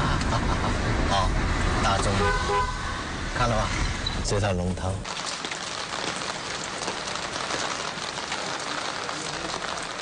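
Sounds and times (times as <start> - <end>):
rain on wet pavement: 5.0 - 10.0.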